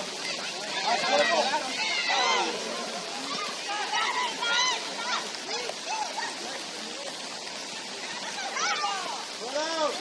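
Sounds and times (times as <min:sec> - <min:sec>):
rain hissing: 0:00.0 - 0:10.0
voices shouting: 0:00.0 - 0:10.0.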